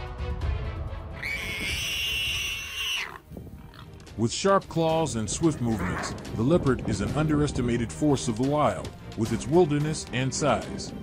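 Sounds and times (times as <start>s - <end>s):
background music: 0.0s - 11.0s
high animal squeal: 1.2s - 3.9s, 5.8s - 6.1s.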